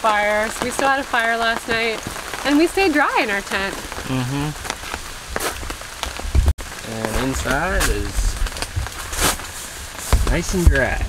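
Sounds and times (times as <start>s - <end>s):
tent fabric rustling: 6.8s - 11.0s.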